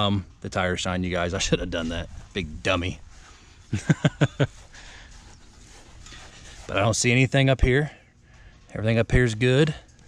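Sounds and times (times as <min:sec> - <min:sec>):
man laughing: 0:03.7 - 0:05.0.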